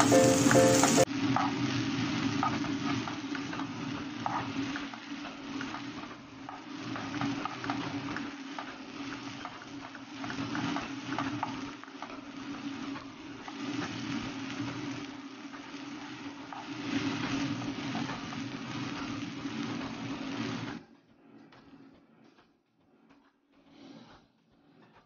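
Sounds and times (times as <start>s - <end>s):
eggs sizzling in a frying pan: 0.0s - 20.7s.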